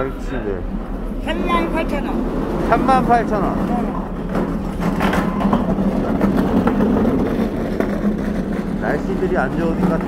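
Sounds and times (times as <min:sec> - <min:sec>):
low mechanical drone: 0:00.0 - 0:10.0.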